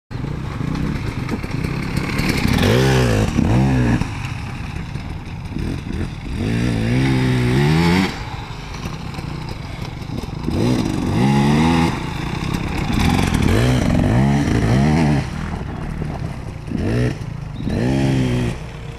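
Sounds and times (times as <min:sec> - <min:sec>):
dirt bike engine revving: 0:00.6 - 0:18.9.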